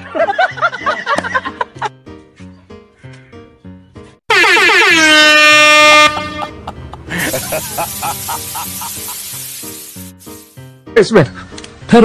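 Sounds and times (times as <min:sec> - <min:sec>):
comedy horn sound effect: 0:04.3 - 0:08.8
light background music: 0:06.2 - 0:12.0.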